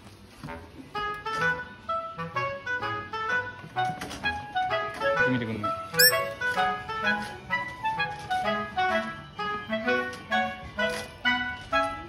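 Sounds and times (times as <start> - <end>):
light bouncy background music: 1.0 - 12.0
bright chime sound effect: 6.0 - 6.3.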